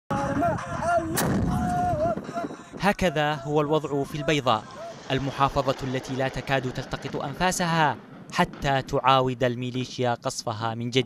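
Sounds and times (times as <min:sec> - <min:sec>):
rifle shot blast: 0:01.2 - 0:01.6
low rumbling echo: 0:04.2 - 0:10.0.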